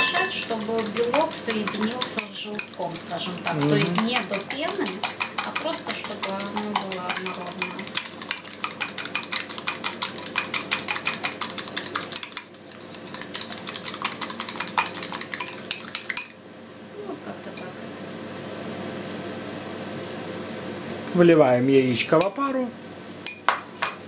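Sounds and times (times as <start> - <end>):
fork beating egg in ceramic bowl: 0.0 - 16.4.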